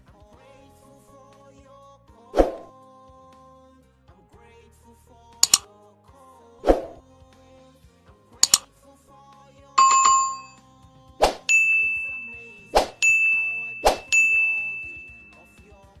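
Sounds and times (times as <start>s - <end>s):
mouse double click: 5.4s - 5.7s, 8.4s - 8.6s
bell ding: 9.8s - 10.6s, 11.4s - 15.8s
bright ringing chime: 9.8s - 10.6s, 11.5s - 15.7s.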